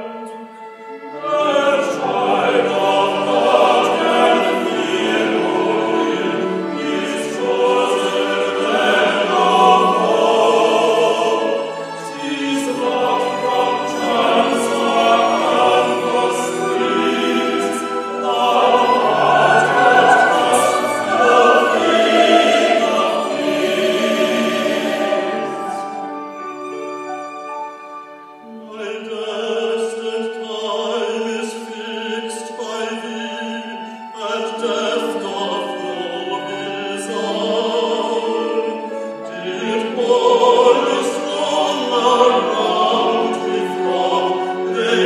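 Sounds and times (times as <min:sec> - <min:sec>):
choir and orchestra: 0:00.0 - 0:45.0
operatic vocal trio singing: 0:01.1 - 0:26.0, 0:28.7 - 0:45.0.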